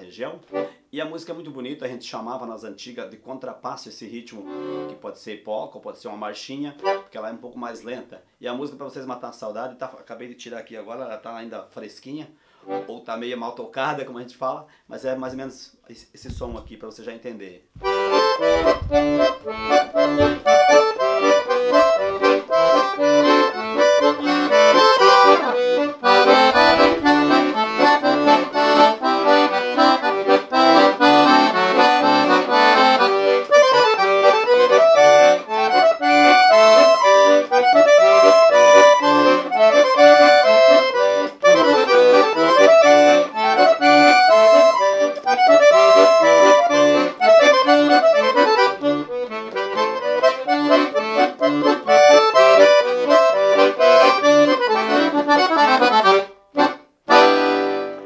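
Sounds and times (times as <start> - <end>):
piano accordion playing slow tune: 4.5 - 5.0, 17.8 - 58.0.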